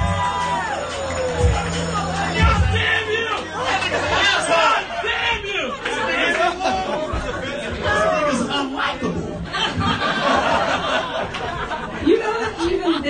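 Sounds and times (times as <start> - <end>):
low music: 0.0 - 4.8
indistinct crowd chatter: 0.0 - 13.0.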